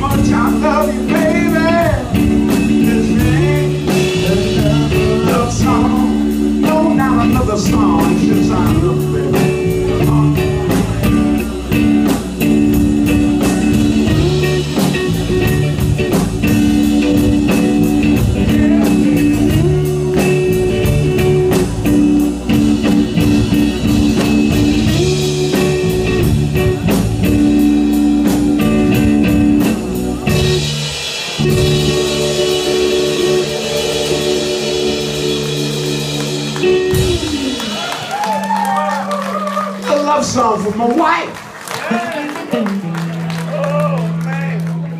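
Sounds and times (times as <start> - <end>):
person singing: 0.0 - 12.2, 17.1 - 22.7, 23.9 - 26.8, 31.4 - 40.2
held keyboard chords: 0.0 - 41.1
bass: 0.0 - 44.9
drums: 0.0 - 44.9
electric guitar: 0.0 - 44.9.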